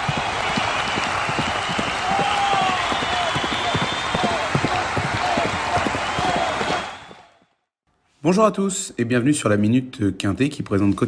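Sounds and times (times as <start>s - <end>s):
horse hooves pounding track: 0.0s - 7.4s
crowd cheering: 0.0s - 7.6s.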